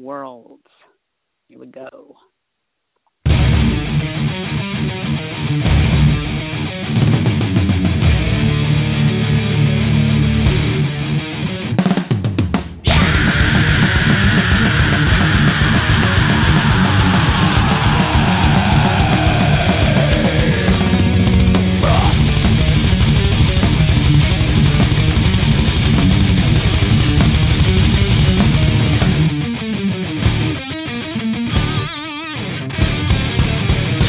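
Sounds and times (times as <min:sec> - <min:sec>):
thrash metal song: 0:03.3 - 0:34.0
long falling tone: 0:12.9 - 0:22.9.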